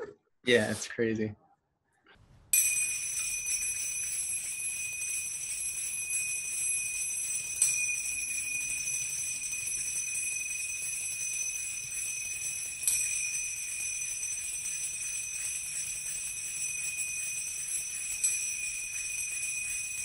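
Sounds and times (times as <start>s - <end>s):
finger cymbals ringing: 2.6s - 20.0s.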